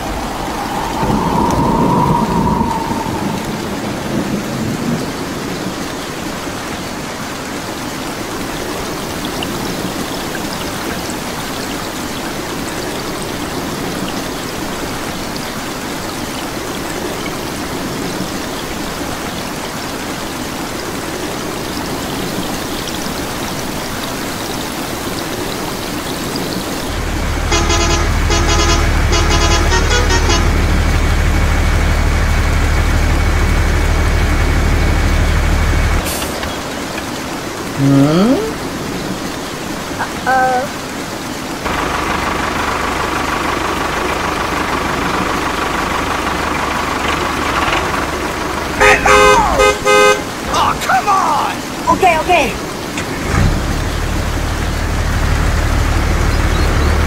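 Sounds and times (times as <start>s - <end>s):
steady rain falling: 0.0s - 57.0s
truck engine droning: 26.9s - 36.0s, 41.7s - 52.0s
horn honking: 27.4s - 31.0s, 48.7s - 50.9s.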